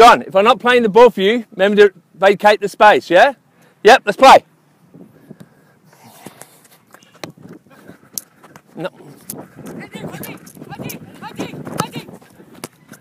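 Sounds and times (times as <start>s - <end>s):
distant players calling out: 8.6s - 12.3s.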